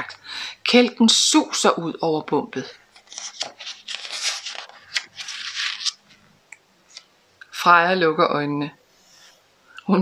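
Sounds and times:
paper page rustling: 2.8s - 6.3s.

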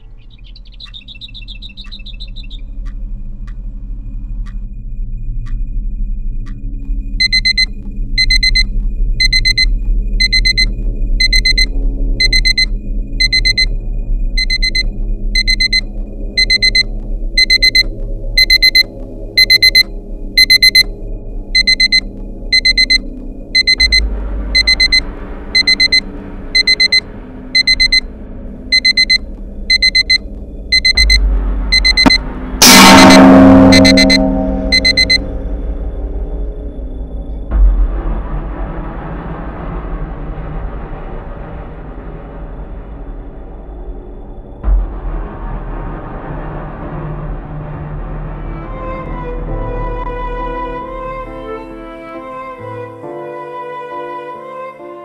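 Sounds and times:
alarm clock beeping: 7.2s - 13.8s, 14.4s - 20.9s, 21.6s - 25.0s, 25.6s - 27.0s, 27.6s - 28.1s, 28.7s - 35.3s.

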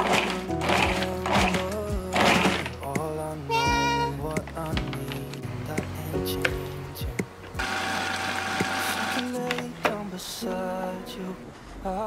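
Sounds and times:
food processor motor running: 0.0s - 1.6s, 7.6s - 9.3s.

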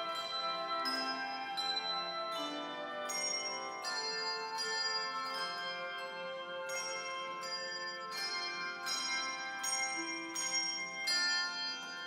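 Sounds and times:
flute playing: 0.0s - 4.6s
handbells ringing melody: 0.0s - 12.0s.

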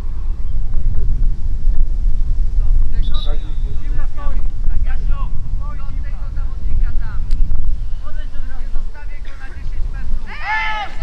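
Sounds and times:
wind buffeting microphone: 0.0s - 11.0s
players shouting and calling: 10.1s - 11.0s.

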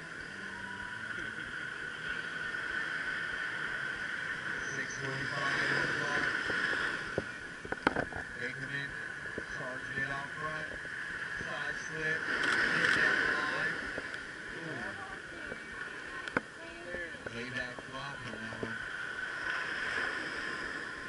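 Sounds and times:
small waves washing on sand: 0.7s - 21.0s.

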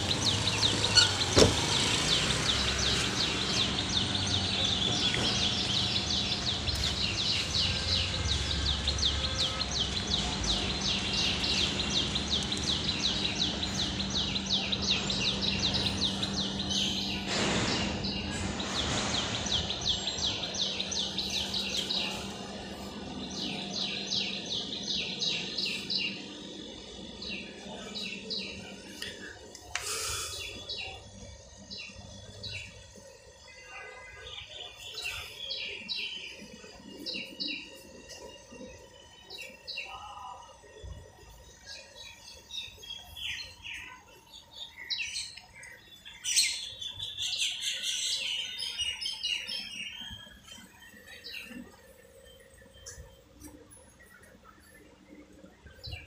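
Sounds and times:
birds chirping: 0.0s - 56.0s.

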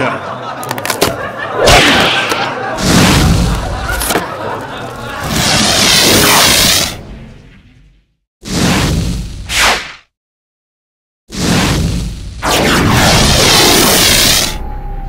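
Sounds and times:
whoosh and boom: 2.7s - 3.9s, 11.3s - 14.6s.

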